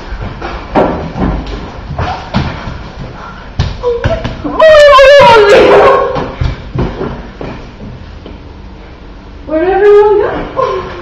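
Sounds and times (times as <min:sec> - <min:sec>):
girl squealing loudly: 0:03.8 - 0:06.2.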